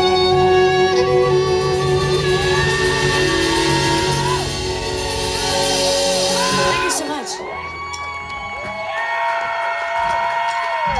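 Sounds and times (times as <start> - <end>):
audience cheering and whooping: 1.2 - 10.9.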